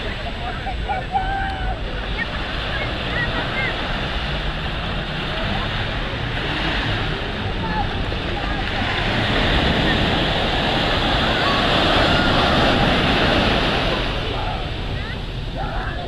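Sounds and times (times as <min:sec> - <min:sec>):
distant voices of people: 0:00.0 - 0:16.0
sea surf washing onto beach: 0:00.0 - 0:16.0.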